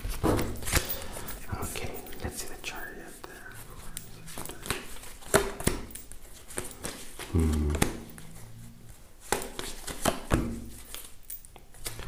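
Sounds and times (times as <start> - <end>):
cards rustling and clicking: 0.0 - 8.4, 9.2 - 12.0
person whispering: 1.3 - 4.9, 7.3 - 8.6.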